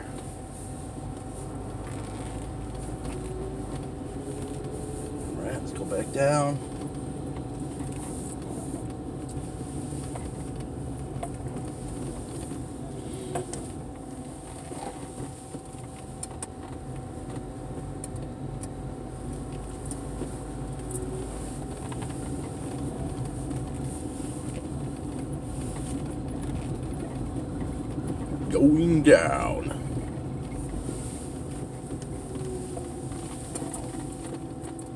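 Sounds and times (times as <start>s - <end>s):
car engine and tyre hum: 0.0s - 34.9s.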